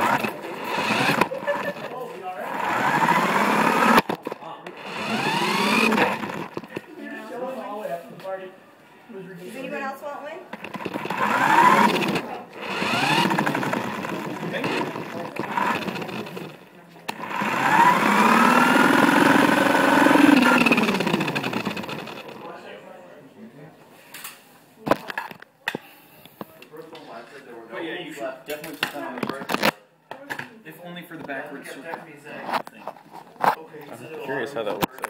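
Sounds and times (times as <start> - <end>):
model car motor whining: 0.0 - 6.8, 10.5 - 22.5.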